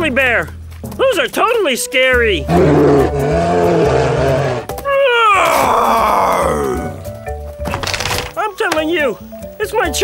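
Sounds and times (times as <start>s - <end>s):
cartoon dinosaur roar: 2.5s - 4.7s, 5.4s - 7.0s.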